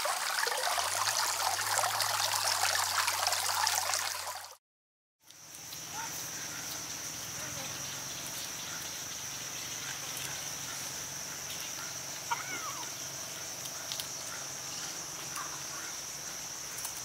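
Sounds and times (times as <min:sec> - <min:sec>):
insects droning: 0:05.2 - 0:17.0.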